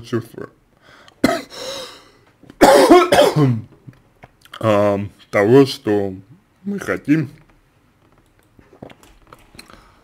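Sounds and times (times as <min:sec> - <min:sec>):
man coughing: 0:01.2 - 0:01.7, 0:02.6 - 0:03.6.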